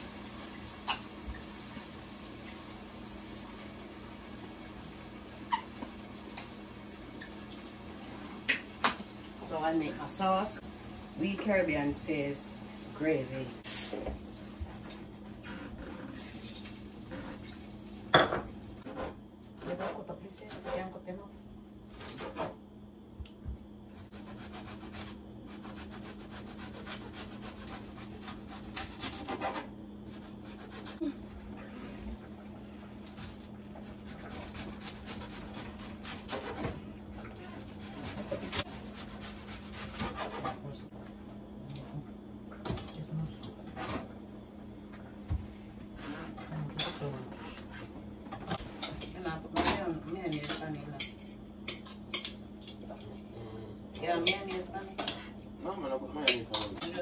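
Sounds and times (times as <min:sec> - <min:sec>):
steady low hum: 0:06.1 - 0:57.0.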